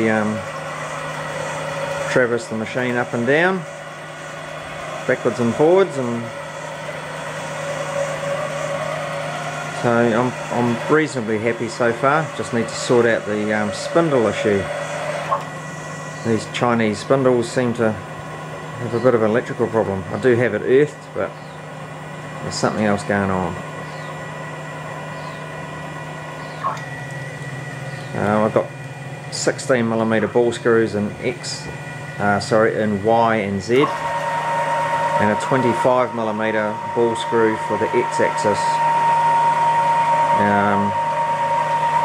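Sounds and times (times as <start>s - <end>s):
stepper motor whine: 0.0s - 42.0s.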